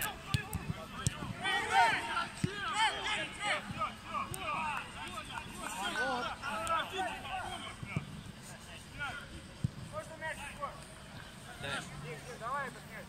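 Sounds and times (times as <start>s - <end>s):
players calling and shouting: 0.0s - 13.0s
ball being kicked thud: 0.3s - 1.4s.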